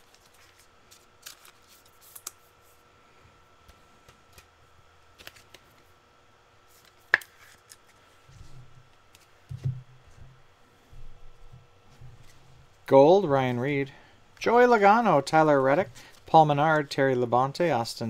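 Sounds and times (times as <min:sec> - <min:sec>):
card wrappers crinkling: 0:00.0 - 0:02.5, 0:05.2 - 0:05.8.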